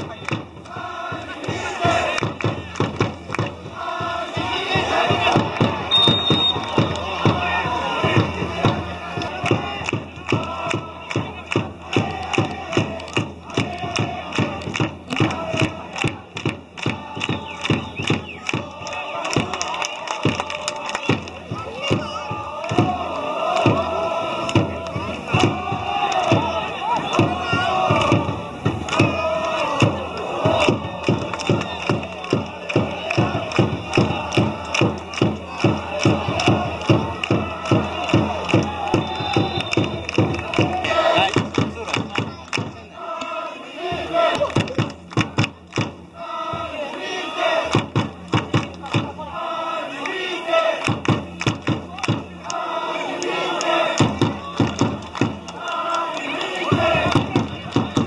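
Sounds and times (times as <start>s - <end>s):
crowd chanting in unison: 0.0s - 58.0s
steady drumbeat: 0.0s - 58.0s.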